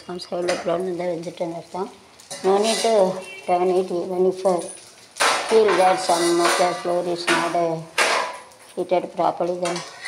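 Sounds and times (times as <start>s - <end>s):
person talking: 0.0s - 4.8s, 5.5s - 7.9s, 8.8s - 10.0s
metal cookware clattering: 2.2s - 10.0s.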